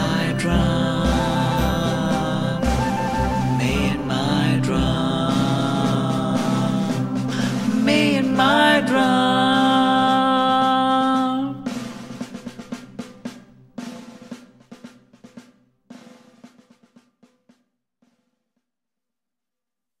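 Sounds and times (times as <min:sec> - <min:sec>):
man singing a held note: 0:00.0 - 0:10.0
drum-like hits: 0:00.0 - 0:17.0.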